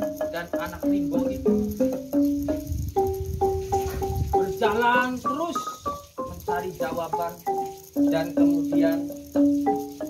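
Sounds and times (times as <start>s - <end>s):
wooden xylophone notes: 0.0s - 10.0s.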